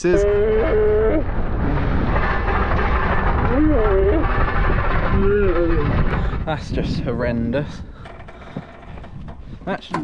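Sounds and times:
wind buffeting microphone: 0:00.0 - 0:10.0
tyres rumbling over gravel: 0:01.2 - 0:06.8.

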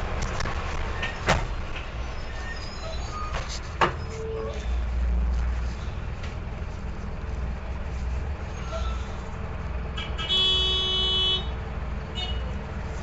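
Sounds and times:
diesel bus engine rumbling: 0:00.0 - 0:13.0
loud horn-like beep: 0:10.2 - 0:11.5.

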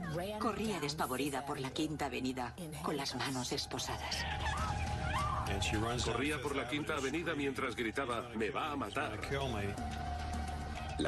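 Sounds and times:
steady background tone: 0:00.0 - 0:11.0.

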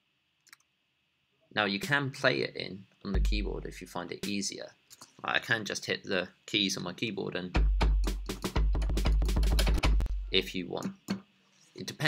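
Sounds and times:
deep kick drum booming: 0:03.2 - 0:03.8, 0:07.6 - 0:10.4.

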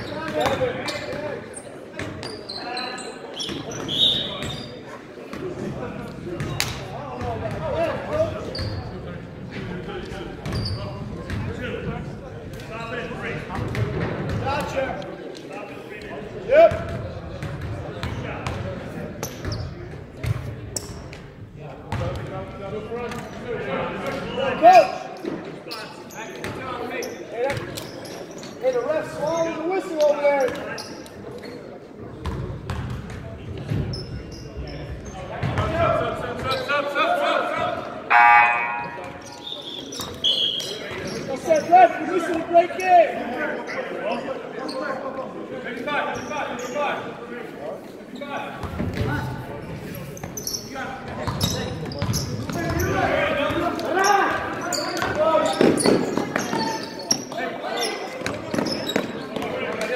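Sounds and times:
players calling out: 0:36.4 - 0:44.2.

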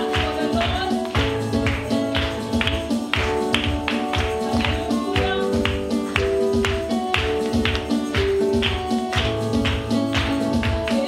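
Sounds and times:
acoustic guitar: 0:00.0 - 0:11.0
worship band music: 0:00.0 - 0:11.0.

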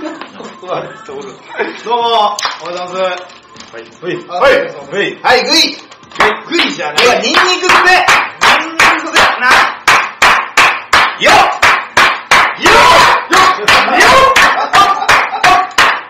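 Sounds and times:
hand claps: 0:02.4 - 0:02.7, 0:06.2 - 0:16.0
men chanting rhythmically: 0:12.6 - 0:15.7.

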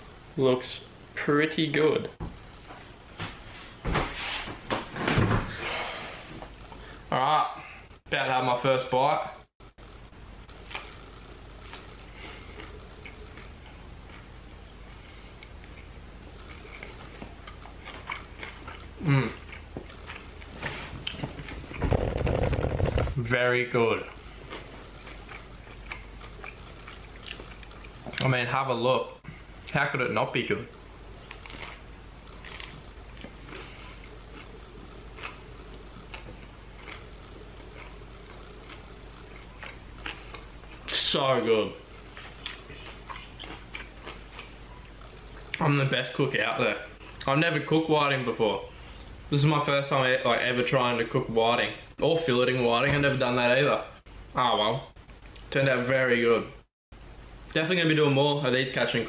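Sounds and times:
low steady room hum: 0:00.0 - 0:59.0
person chewing food: 0:10.5 - 0:22.9, 0:24.1 - 0:28.2, 0:30.7 - 0:41.0, 0:41.8 - 0:45.6.

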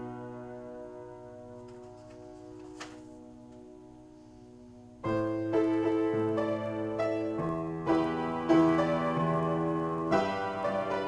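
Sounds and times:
piano chord ringing: 0:00.0 - 0:11.0.

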